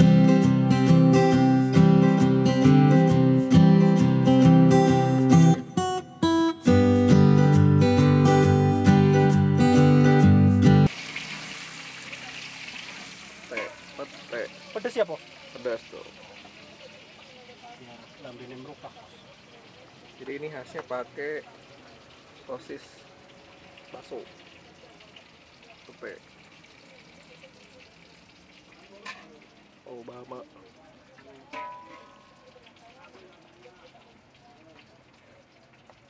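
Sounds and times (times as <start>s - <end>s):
chillies sizzling in a wok: 0.0s - 5.5s, 6.7s - 36.0s
voices: 12.0s - 36.0s.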